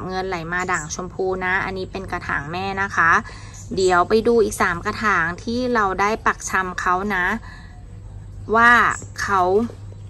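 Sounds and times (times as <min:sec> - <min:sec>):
woman speaking: 0:00.0 - 0:09.9
faint low hum: 0:00.0 - 0:10.0.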